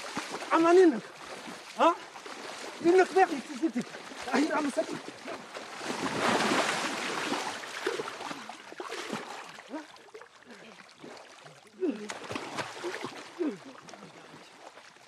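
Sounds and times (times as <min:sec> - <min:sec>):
heavy splash: 0:00.0 - 0:10.2, 0:11.0 - 0:14.0
water sloshing: 0:00.0 - 0:15.0
men grunting and gasping: 0:11.8 - 0:12.2, 0:13.4 - 0:13.7.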